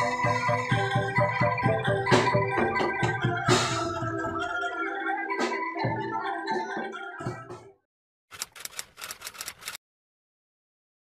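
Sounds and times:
typewriter key clacks: 0:08.4 - 0:09.8.

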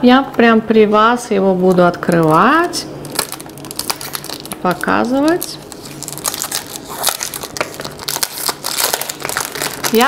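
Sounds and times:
cellophane crinkling and tearing: 0:02.1 - 0:10.0.

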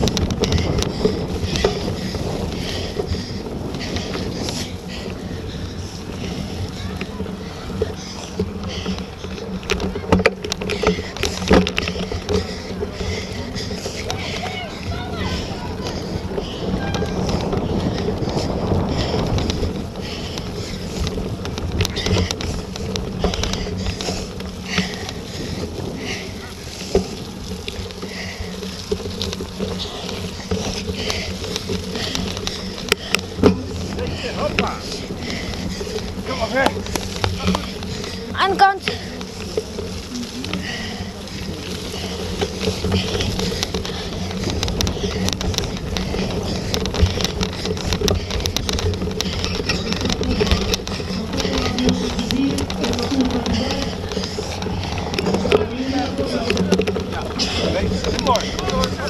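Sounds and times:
bicycle rumbling and rattling: 0:00.0 - 0:59.0
distant voices: 0:00.0 - 0:59.0.

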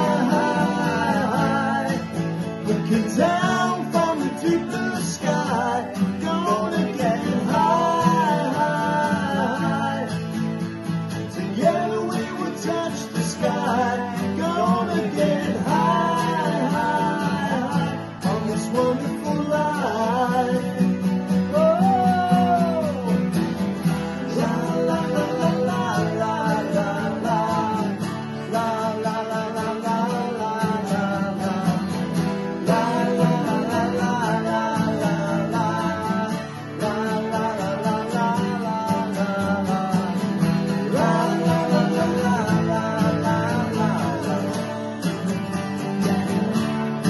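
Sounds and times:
acoustic guitars strummed: 0:00.0 - 0:47.0
men singing: 0:00.0 - 0:47.0.

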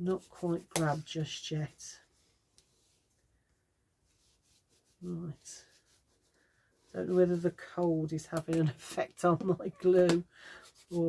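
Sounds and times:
bone folder rubbing paper: 0:04.1 - 0:07.6, 0:10.6 - 0:11.0.

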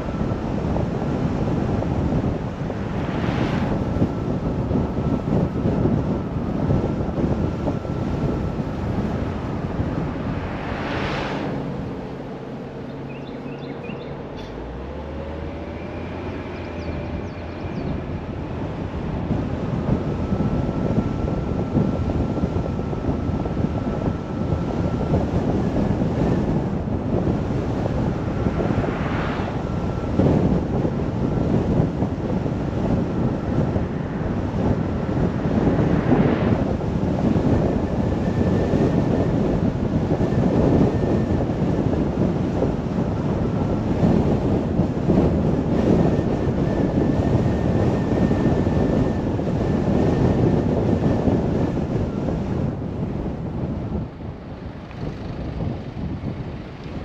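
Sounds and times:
car road noise: 0:00.0 - 0:57.0
wind rush on microphone: 0:00.0 - 0:57.0.

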